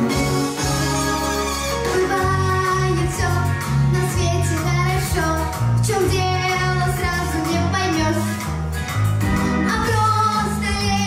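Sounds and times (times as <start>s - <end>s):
recorded backing track with bass: 0.0s - 11.0s
girl singing into microphone: 2.0s - 8.4s, 9.6s - 11.0s.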